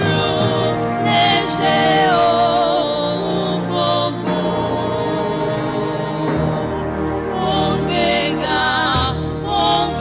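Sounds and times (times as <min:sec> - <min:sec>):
women's choir singing gospel: 0:00.0 - 0:10.0.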